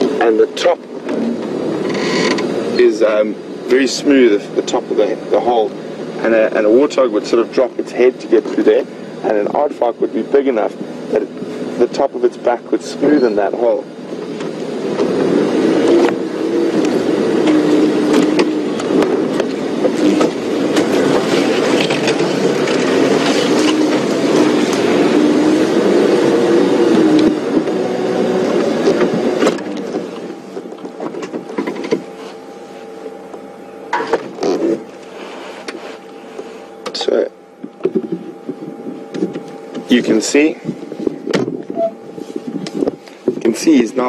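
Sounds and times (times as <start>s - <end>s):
engine idling: 0.0s - 44.0s
vehicle engine under load: 0.0s - 44.0s.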